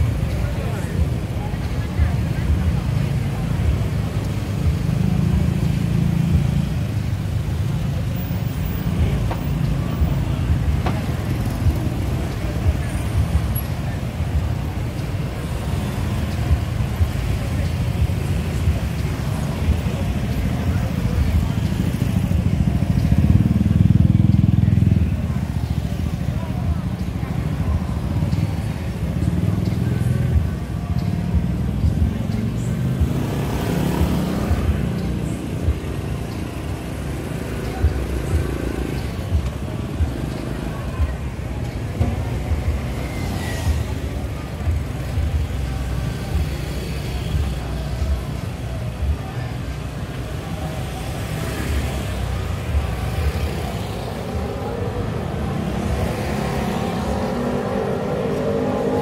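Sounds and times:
background voices: 0:00.0 - 0:59.0.

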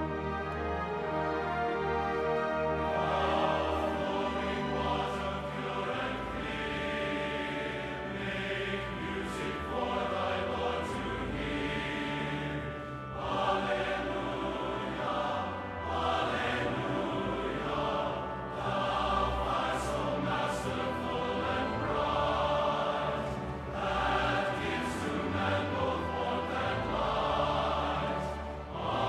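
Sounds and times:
choir singing slow phrases: 0:00.0 - 0:29.0.

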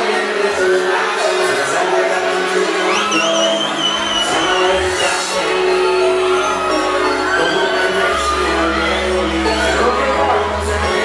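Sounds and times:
bass: 0:00.0 - 0:11.0
crowd: 0:00.0 - 0:11.0
loud concert music: 0:00.0 - 0:11.0
high whistle-like tone: 0:02.8 - 0:09.8.

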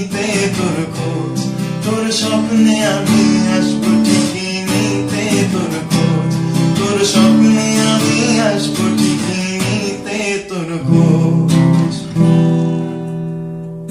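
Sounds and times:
man singing: 0:00.0 - 0:12.4
acoustic guitar strumming: 0:00.0 - 0:13.9.

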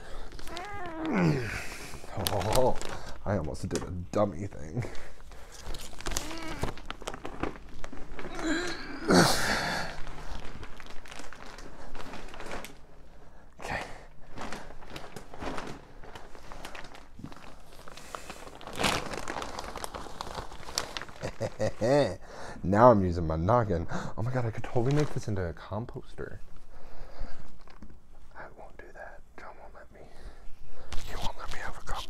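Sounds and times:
plastic bag crinkling: 0:00.0 - 0:03.8, 0:04.8 - 0:22.1, 0:24.6 - 0:25.6.

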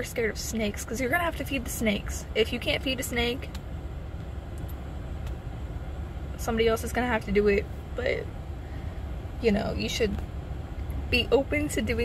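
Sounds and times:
ventilation fan: 0:00.0 - 0:12.0.

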